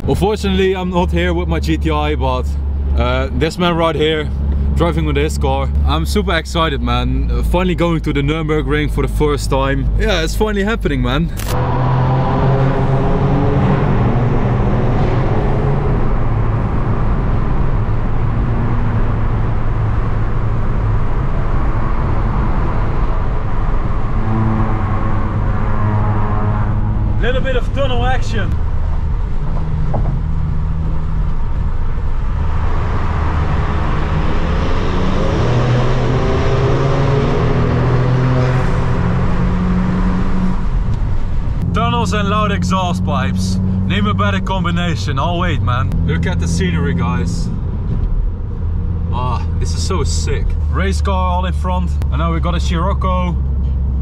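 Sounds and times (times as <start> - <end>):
car engines accelerating: 0.0 - 54.0
road noise: 0.0 - 54.0.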